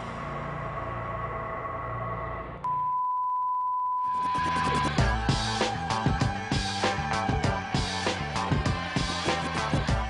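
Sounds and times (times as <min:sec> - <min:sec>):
steady electronic beep: 0:02.6 - 0:05.2
background music: 0:04.1 - 0:10.0
funky music with drums: 0:04.6 - 0:10.0.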